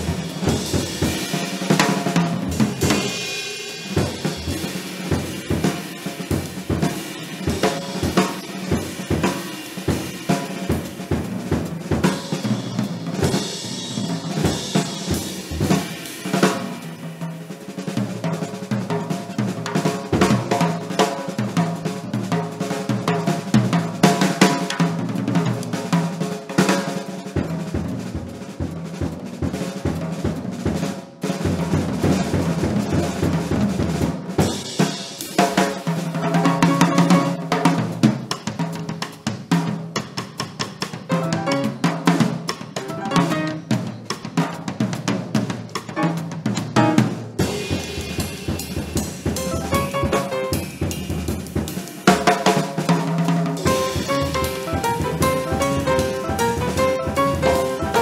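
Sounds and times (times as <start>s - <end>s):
jazz drum kit solo: 0.0s - 58.0s.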